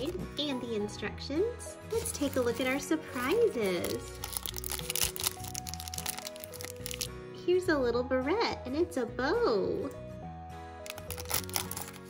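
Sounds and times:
background music: 0.0s - 12.0s
foil wrapper crinkling: 2.0s - 2.8s, 3.6s - 7.1s, 10.9s - 12.0s.

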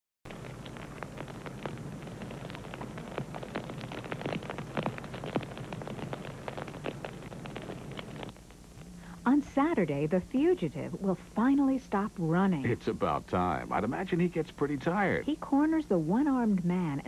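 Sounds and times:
irregular crackling clicks: 0.3s - 8.9s
low hum and hiss: 0.3s - 17.0s.

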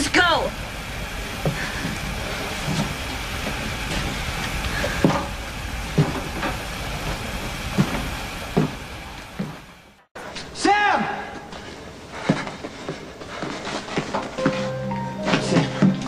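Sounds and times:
steady rumbling: 0.0s - 10.2s.

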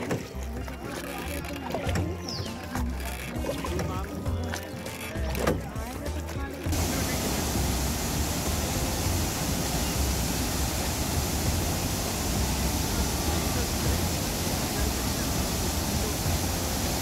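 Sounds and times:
boat motor running: 0.0s - 17.0s
faint voices: 0.0s - 17.0s
waterfall rushing over rock: 6.7s - 17.0s.

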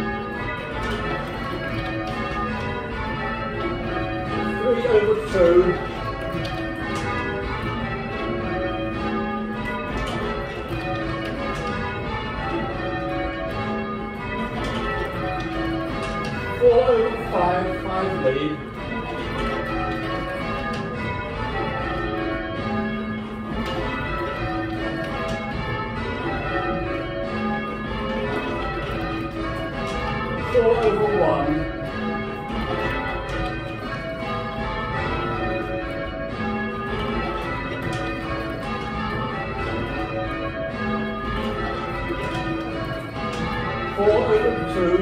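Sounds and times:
church bells ringing: 0.0s - 45.0s
person speaking: 4.5s - 6.1s, 16.5s - 18.8s, 30.4s - 31.8s, 43.9s - 45.0s.

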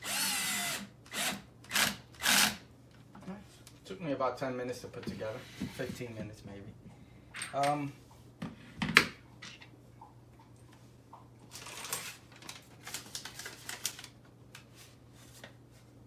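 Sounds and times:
paper crinkling: 11.5s - 15.6s.

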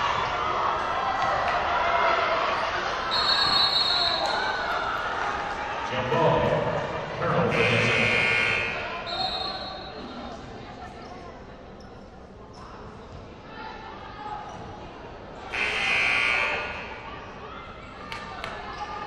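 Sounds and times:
crowd voices: 0.0s - 19.0s
gym buzzer echoing: 7.4s - 8.9s, 15.5s - 16.8s.

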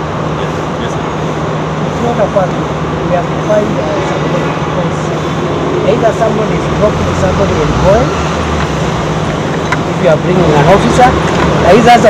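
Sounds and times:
car engine idling: 0.0s - 12.0s
city traffic noise: 0.0s - 12.0s.

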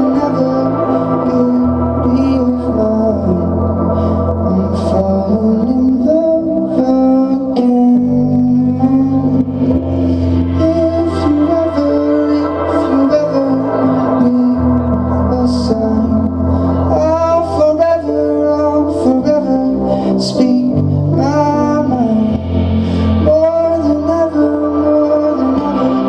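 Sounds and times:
live band playing: 0.0s - 26.0s
sliding lead melody: 0.0s - 26.0s.

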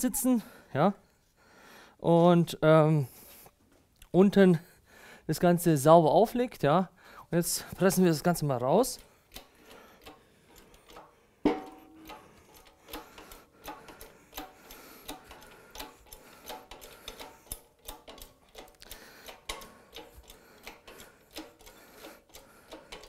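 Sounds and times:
sharp metallic knock: 11.4s - 12.2s.

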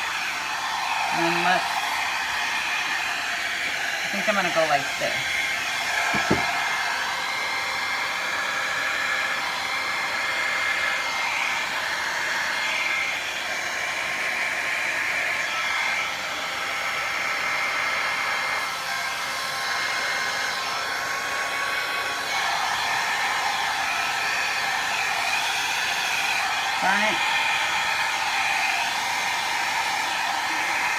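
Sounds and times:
hair dryer blowing air: 0.0s - 30.9s
short knock: 6.1s - 6.5s.

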